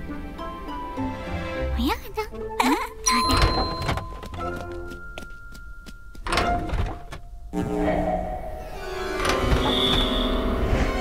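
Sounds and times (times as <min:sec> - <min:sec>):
cartoon lift doors sliding shut: 0:06.3 - 0:11.0.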